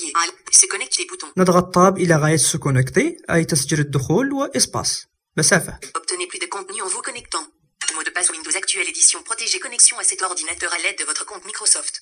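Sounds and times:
synthetic voice reading rapidly: 0.0s - 12.0s.

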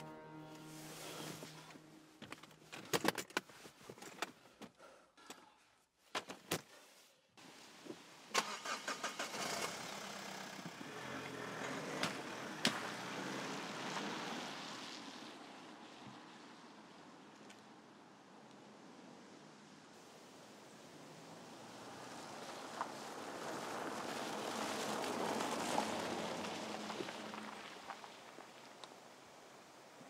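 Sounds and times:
car engine starting and running: 8.3s - 14.5s.

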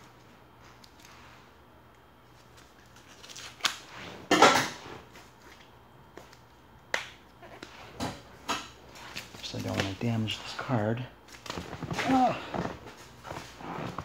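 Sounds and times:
paper and plastic rustling: 8.9s - 10.7s.

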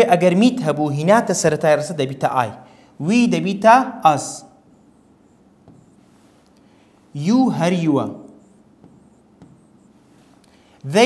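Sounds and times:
man talking: 0.0s - 4.5s, 7.1s - 8.4s
handwriting on touchscreen: 4.2s - 10.5s.

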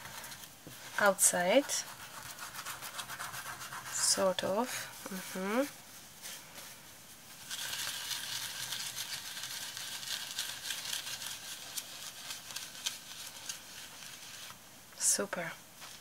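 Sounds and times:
tissue rubbing on canvas: 0.0s - 14.6s.

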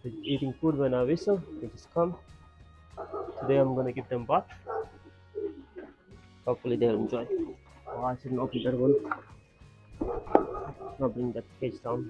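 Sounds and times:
background music: 0.0s - 12.0s
knock of wire cage: 10.0s - 10.7s.

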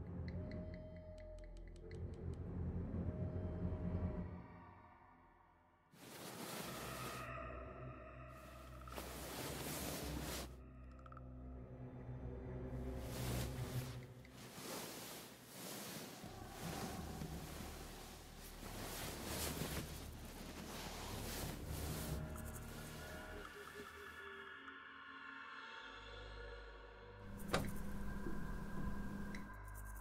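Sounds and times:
bedclothes rustling: 6.0s - 7.3s, 8.4s - 10.6s, 13.0s - 23.5s, 27.3s - 29.5s.

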